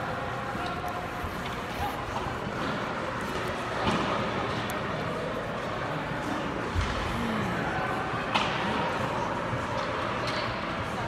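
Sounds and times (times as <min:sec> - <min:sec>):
echoing room noise: 0:00.0 - 0:11.0
hubbub of distant voices: 0:00.0 - 0:11.0.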